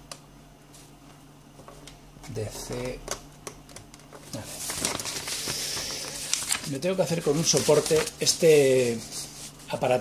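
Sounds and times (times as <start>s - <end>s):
rustling handling noise: 4.1s - 10.0s.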